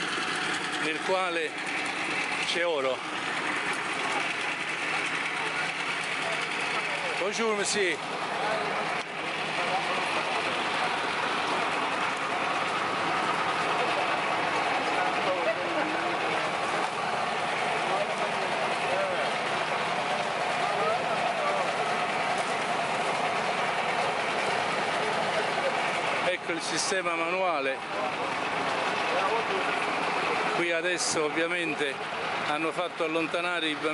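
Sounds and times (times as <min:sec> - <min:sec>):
motor running steadily: 0:00.0 - 0:33.9.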